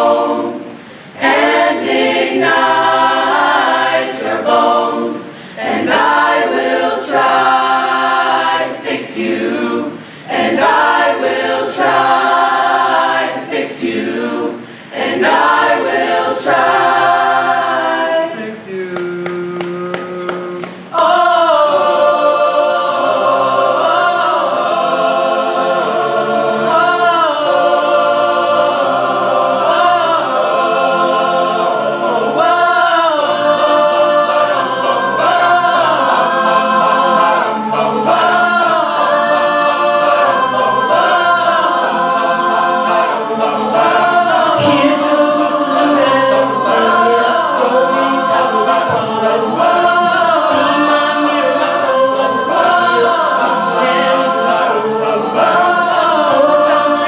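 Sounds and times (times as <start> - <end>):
a cappella group singing in harmony: 0.0 - 57.0.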